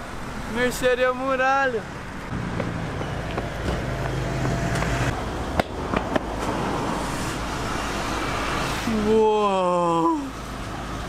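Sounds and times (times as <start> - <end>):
car engine humming: 0.0 - 11.0
footsteps on asphalt: 2.3 - 6.4.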